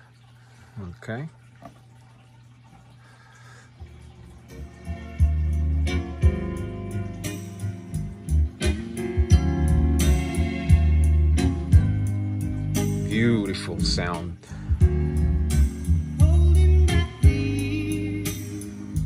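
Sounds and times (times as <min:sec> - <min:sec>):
recorded music over speakers: 0:04.5 - 0:19.0.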